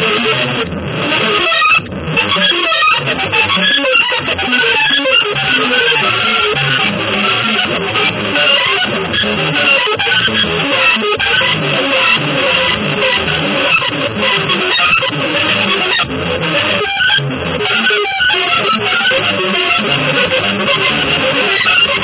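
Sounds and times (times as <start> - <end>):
electric guitar playing fast notes: 0.0 - 22.0.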